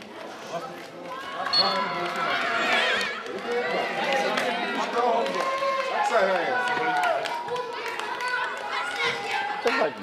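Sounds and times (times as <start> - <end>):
people shouting and calling: 1.1 - 10.0.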